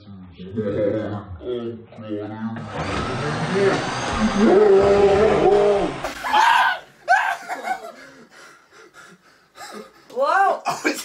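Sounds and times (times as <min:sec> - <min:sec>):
men crying out: 0:04.3 - 0:08.3
young men laughing: 0:05.5 - 0:10.1.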